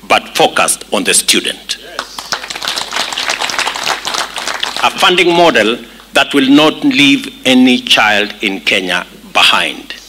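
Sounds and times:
audience applauding: 0:02.0 - 0:05.1.

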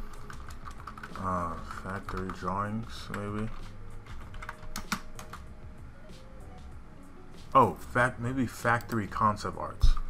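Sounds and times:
typing on computer keyboard: 0:00.1 - 0:05.4.

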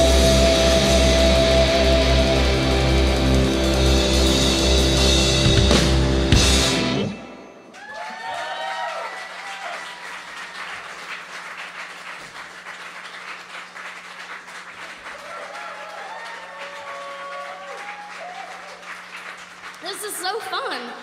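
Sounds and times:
audience clapping: 0:07.7 - 0:21.0.

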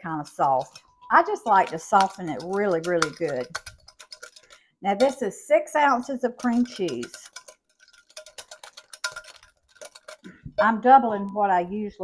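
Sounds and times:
whisk clicking against glass bowl: 0:00.2 - 0:05.2, 0:06.3 - 0:10.2.

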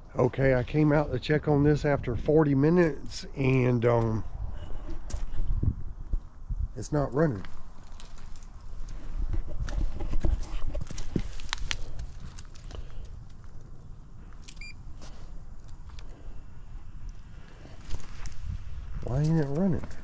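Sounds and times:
footsteps on dry leaves: 0:07.4 - 0:13.0.

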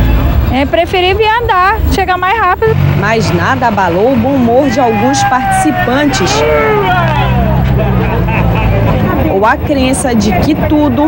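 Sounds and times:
bus engine humming: 0:00.0 - 0:11.0
passengers talking: 0:00.0 - 0:11.0
people laughing: 0:04.0 - 0:11.0.

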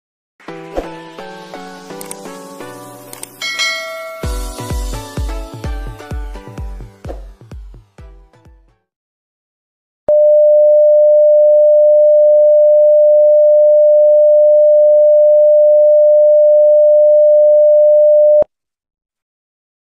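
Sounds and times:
electronic test tone: 0:10.1 - 0:18.5.

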